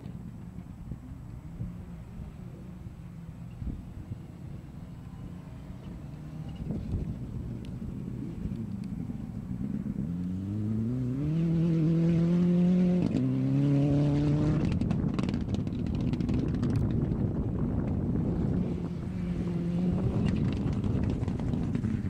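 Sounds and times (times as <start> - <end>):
rally car engine accelerating: 5.1 - 22.0
rough engine crackling: 14.4 - 22.0.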